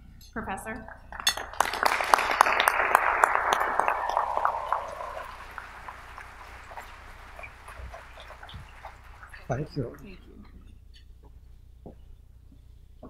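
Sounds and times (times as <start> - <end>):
audience applauding: 1.0 - 10.2.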